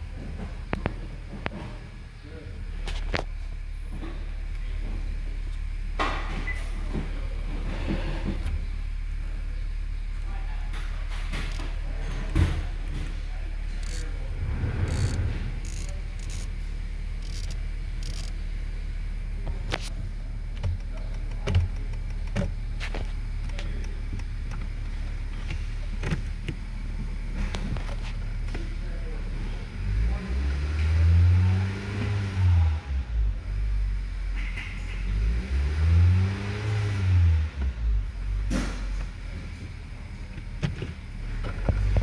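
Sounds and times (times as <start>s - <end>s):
car engine idling: 0.0s - 35.7s, 37.1s - 42.0s.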